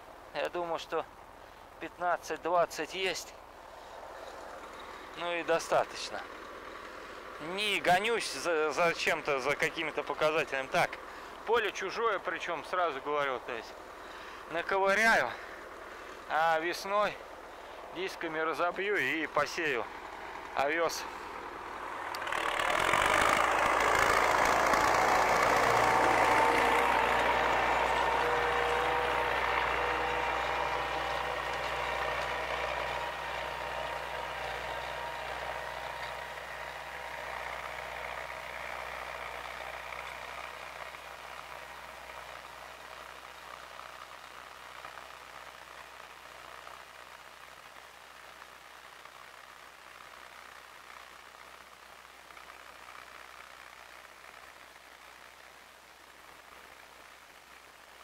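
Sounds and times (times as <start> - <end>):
tractor diesel engine under load: 0.0 - 47.9.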